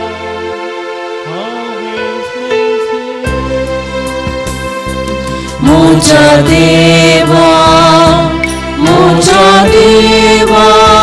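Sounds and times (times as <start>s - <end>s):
hymn accompaniment chords: 0.0s - 11.0s.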